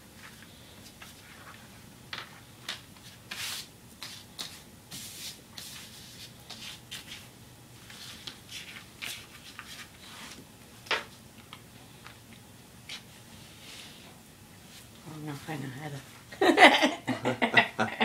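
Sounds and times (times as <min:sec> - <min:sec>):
hands rubbing dough on counter: 0:03.0 - 0:10.4.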